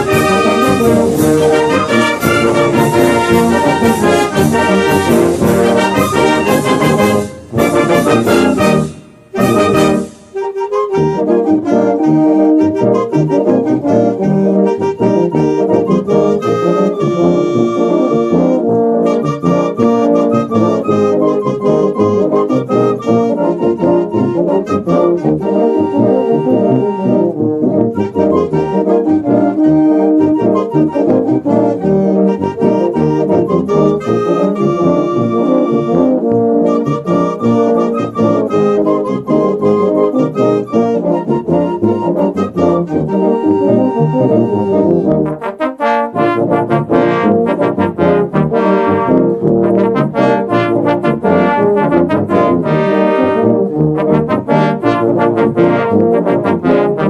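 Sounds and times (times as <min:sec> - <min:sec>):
brass band playing: 0:00.0 - 0:57.0
trombones: 0:00.0 - 0:57.0.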